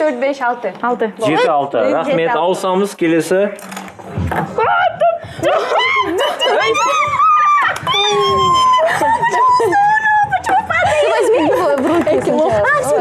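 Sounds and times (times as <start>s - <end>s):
long drawn-out cries: 4.6s - 10.4s
excited voices shouting and squealing: 4.6s - 11.8s.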